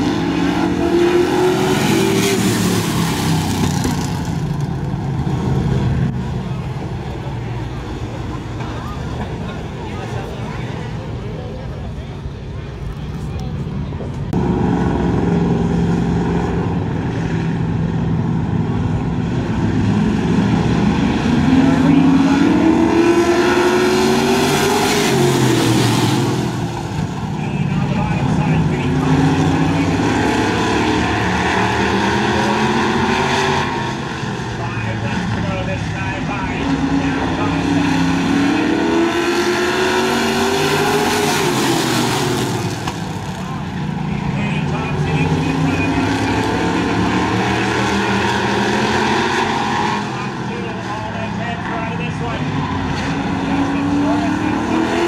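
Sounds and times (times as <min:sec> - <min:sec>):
race car engines revving: 0:00.0 - 0:55.0.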